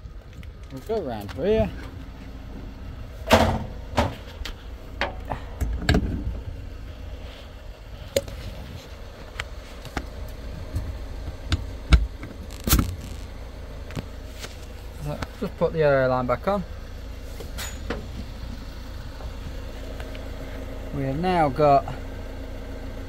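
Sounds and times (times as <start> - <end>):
steady low hum: 0.0 - 23.0
knocks and clunks on metal: 3.2 - 6.4.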